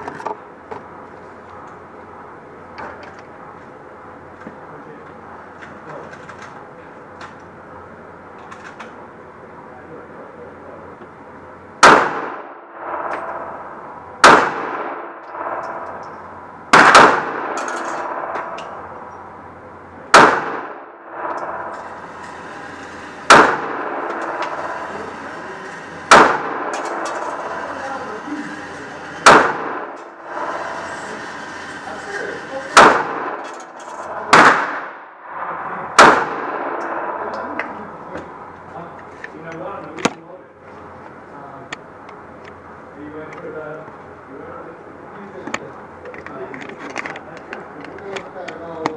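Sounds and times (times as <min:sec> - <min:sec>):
pistol shots echoing indoors: 0:11.8 - 0:15.9, 0:16.7 - 0:18.9, 0:20.1 - 0:22.0, 0:22.9 - 0:27.7, 0:29.2 - 0:30.1, 0:32.7 - 0:33.5, 0:34.2 - 0:37.6.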